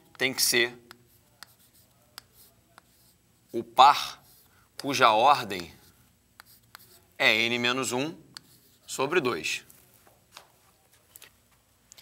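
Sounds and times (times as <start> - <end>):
chalk tapping on chalkboard: 0.1 - 3.1, 4.2 - 7.0
chalk scratching: 0.2 - 7.1, 8.4 - 9.1.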